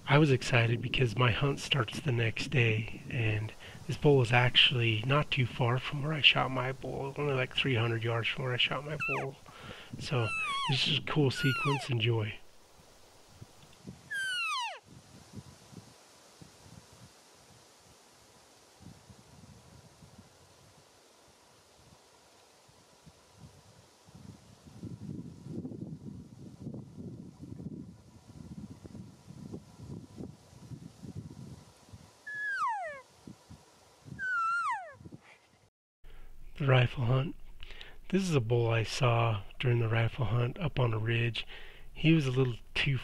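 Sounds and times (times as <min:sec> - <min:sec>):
elk whistled calls: 0:08.8 - 0:09.4, 0:10.0 - 0:12.0, 0:14.1 - 0:14.8, 0:32.3 - 0:33.0, 0:34.2 - 0:35.0.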